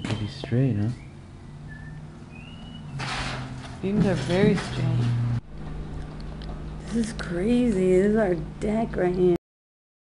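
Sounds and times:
low steady hum: 0.0 - 9.4.

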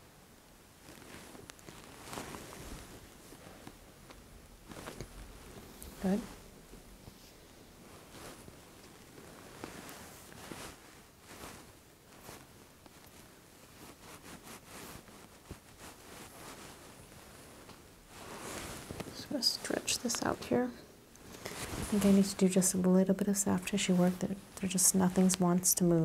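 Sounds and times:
fabric rustling: 0.6 - 26.0
hands rubbing on skin: 9.2 - 20.4.

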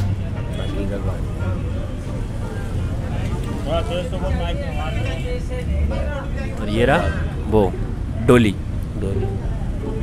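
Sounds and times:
low rumble of street noise: 0.0 - 10.0
people talking: 0.0 - 10.0.

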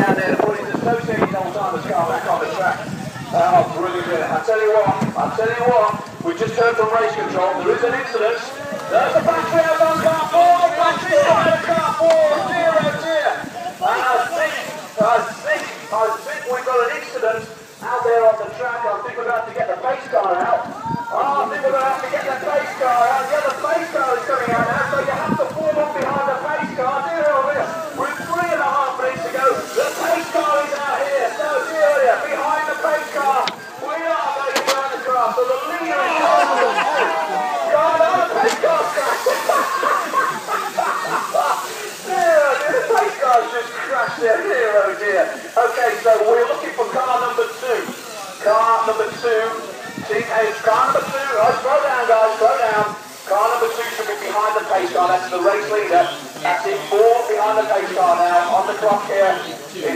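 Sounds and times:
voices talking: 0.0 - 59.9.

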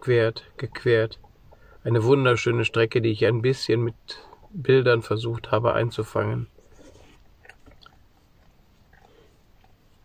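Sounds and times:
faint soft small sounds: 0.1 - 10.0.

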